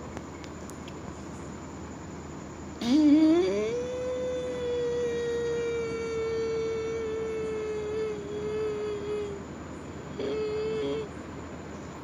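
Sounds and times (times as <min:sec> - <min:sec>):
woman humming long note: 0:02.8 - 0:09.5, 0:10.1 - 0:11.1.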